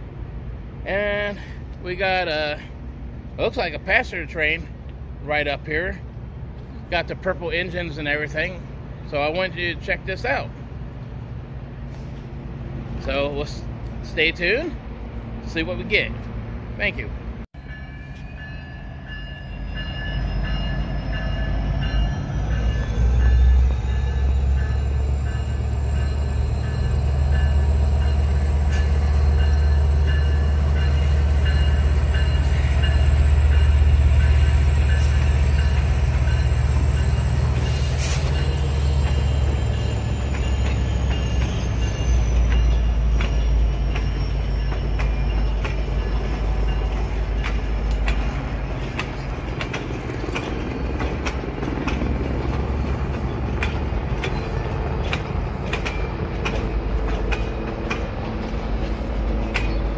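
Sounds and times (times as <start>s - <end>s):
diesel train deep rumble: 0.0s - 59.9s
wheels whining on rails: 17.6s - 59.9s.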